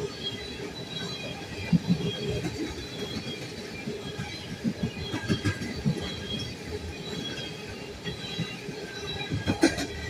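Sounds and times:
freight train rolling past: 0:00.0 - 0:10.0.

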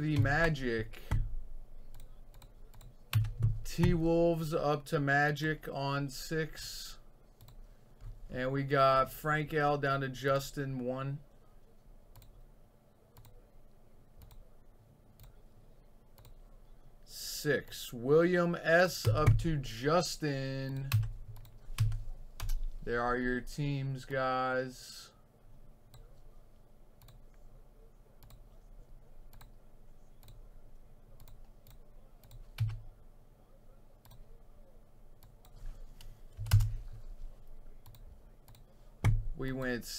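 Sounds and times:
low room hum: 0:00.0 - 0:39.9
computer mouse clicks: 0:01.9 - 0:03.5, 0:07.4 - 0:07.6, 0:12.1 - 0:12.4, 0:13.2 - 0:13.4, 0:14.2 - 0:14.4, 0:15.2 - 0:15.4, 0:16.2 - 0:16.4, 0:20.8 - 0:22.7, 0:27.0 - 0:27.4, 0:28.2 - 0:28.5, 0:29.3 - 0:29.6, 0:30.2 - 0:30.4, 0:31.2 - 0:32.8, 0:34.0 - 0:34.3, 0:37.8 - 0:39.6
keyboard and mouse clicks: 0:01.9 - 0:04.0, 0:20.8 - 0:22.7, 0:35.2 - 0:36.8.

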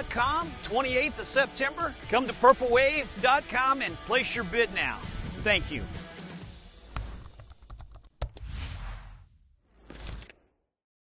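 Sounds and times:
short rush of noise: 0:08.4 - 0:10.3.

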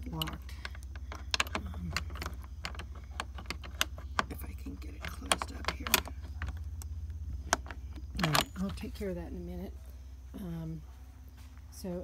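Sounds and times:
keys and padlock clicking: 0:00.0 - 0:09.0
low steady rumble: 0:00.0 - 0:12.0.

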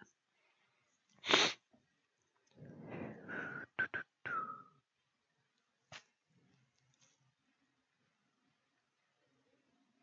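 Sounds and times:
person's sharp burst of breath: 0:01.2 - 0:01.6.

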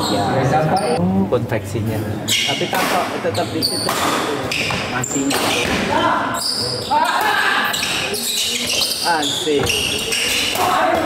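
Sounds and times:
rackets hitting shuttlecock: 0:03.8 - 0:05.9, 0:09.6 - 0:11.0.

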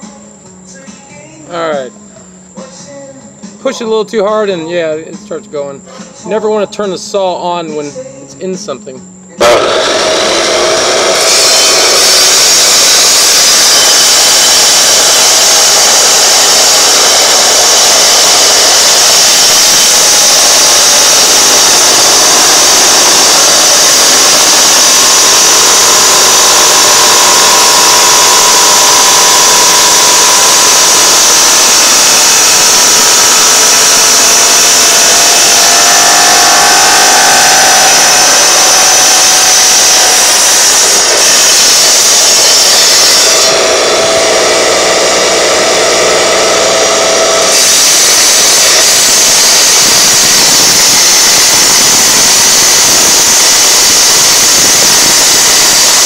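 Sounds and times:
electric saw cutting shell: 0:09.4 - 0:56.0.

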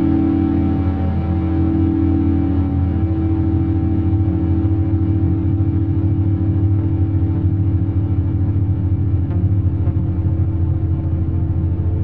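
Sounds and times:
singing bowls sustained tones: 0:00.0 - 0:05.7
low synthesizer drone: 0:00.0 - 0:12.0.

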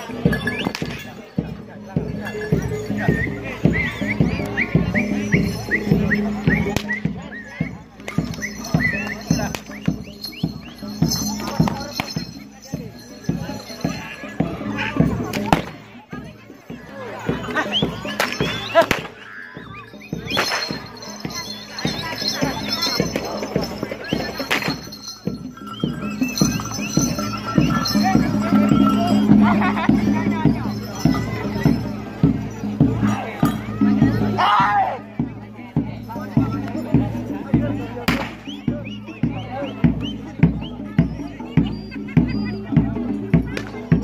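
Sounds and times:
drum strokes: 0:00.0 - 0:34.5
rhythmic percussion: 0:00.0 - 0:44.0
voices calling and shouting: 0:00.0 - 0:44.0
steady ringing tones: 0:07.8 - 0:15.3, 0:19.7 - 0:34.4.

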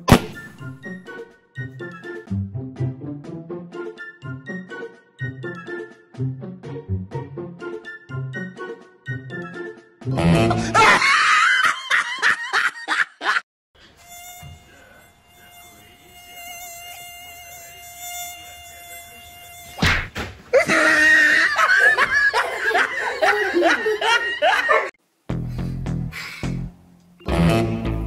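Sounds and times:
laughter: 0:10.3 - 0:13.4, 0:20.5 - 0:25.0
mosquito whine: 0:13.8 - 0:19.9.

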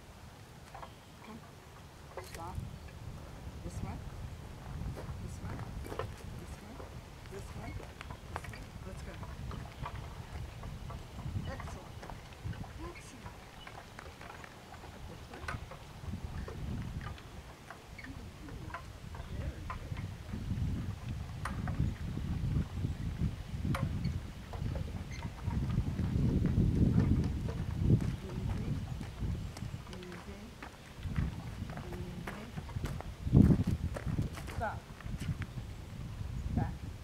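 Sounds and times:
wind rumble on microphone: 0:00.0 - 0:37.0
paws and wheels on gravel: 0:04.6 - 0:19.7, 0:24.6 - 0:35.3.

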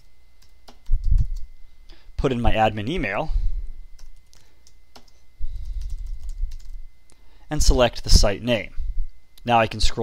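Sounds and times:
computer keyboard typing: 0:00.0 - 0:01.5, 0:04.0 - 0:06.8.

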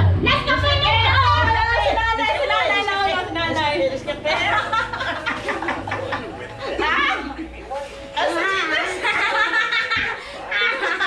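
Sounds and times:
people talking: 0:00.0 - 0:11.0
people laughing: 0:00.3 - 0:11.0.

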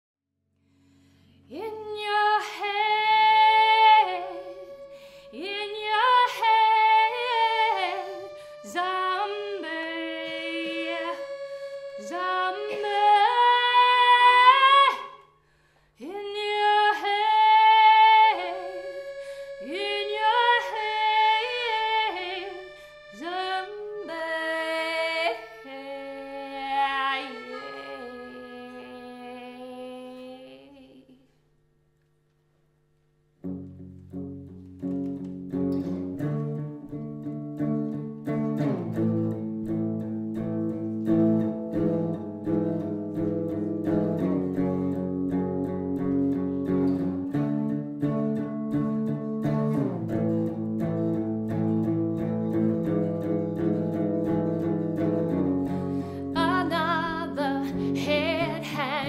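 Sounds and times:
accordion chord: 0:00.9 - 0:15.2, 0:16.1 - 0:29.7, 0:33.4 - 0:59.0
electric guitar picking chords: 0:01.4 - 0:15.0, 0:16.3 - 0:24.6, 0:33.4 - 0:59.0
woman singing: 0:01.5 - 0:15.2, 0:16.0 - 0:19.0, 0:19.6 - 0:31.2, 0:56.2 - 0:59.0.

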